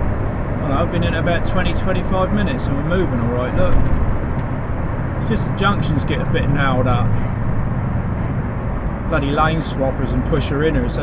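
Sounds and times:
lorry engine and road noise: 0.0s - 11.0s.

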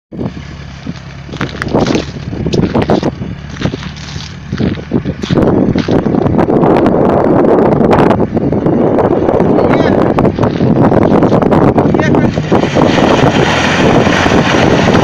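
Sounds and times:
vehicle engines running under load: 0.1s - 15.0s.

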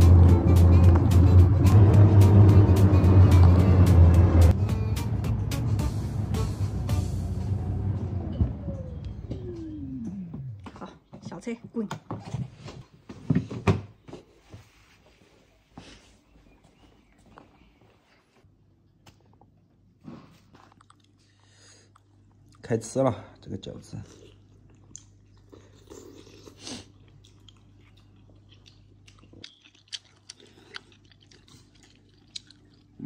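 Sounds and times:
steady low hum: 0.0s - 10.7s
faint chewing: 18.9s - 22.6s, 23.8s - 33.0s.

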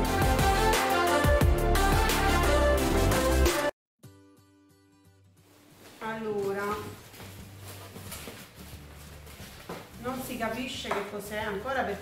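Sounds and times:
faint music: 5.4s - 12.0s
woman speaking: 6.0s - 7.0s, 10.0s - 12.0s.

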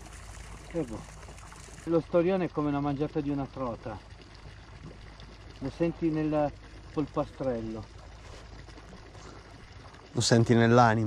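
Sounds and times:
faint outdoor ambience hiss: 0.0s - 11.0s.

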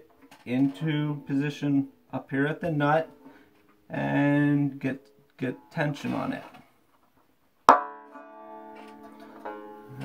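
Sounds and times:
banjo string plucked and ringing: 0.0s - 6.8s, 7.7s - 10.0s.

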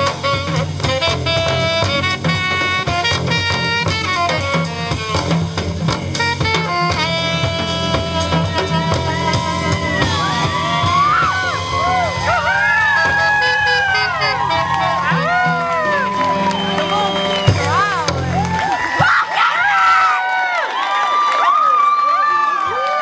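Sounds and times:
sliding high melody: 0.0s - 18.8s
jazz combo playing: 0.0s - 19.0s.

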